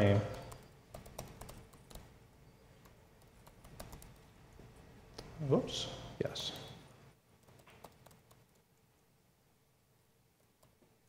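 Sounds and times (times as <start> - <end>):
keyboard typing clicks: 0.3 - 2.1, 2.8 - 4.3, 7.4 - 8.6.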